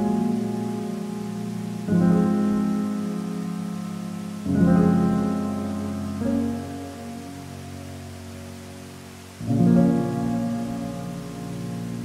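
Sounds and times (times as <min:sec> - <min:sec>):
hiss of falling water: 0:00.0 - 0:12.0
slow solo piano chords: 0:00.0 - 0:12.0.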